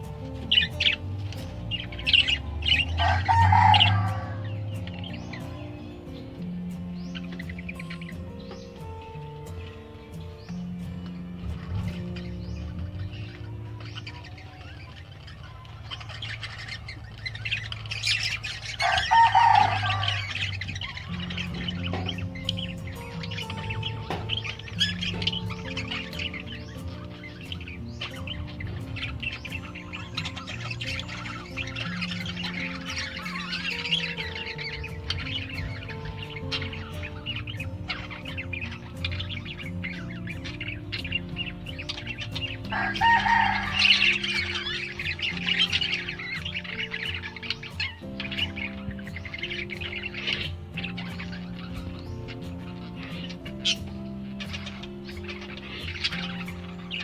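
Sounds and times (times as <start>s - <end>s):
background music: 0.0s - 57.0s
budgerigars chattering and chirping: 0.0s - 57.0s.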